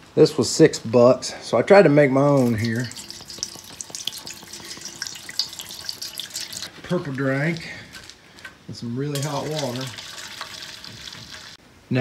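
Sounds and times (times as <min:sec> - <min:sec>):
liquid pouring into metal pan: 0:02.4 - 0:06.7, 0:09.1 - 0:11.6.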